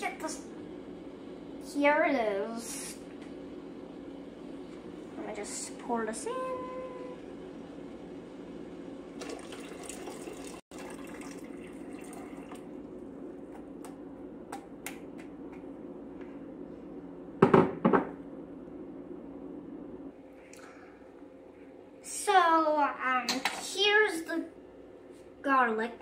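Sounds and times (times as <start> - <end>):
water pouring into metal pot: 9.2 - 12.8.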